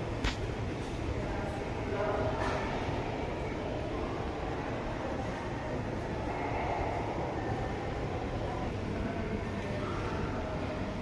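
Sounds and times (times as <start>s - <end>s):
airport terminal hall rumble and hiss: 0.0s - 11.0s.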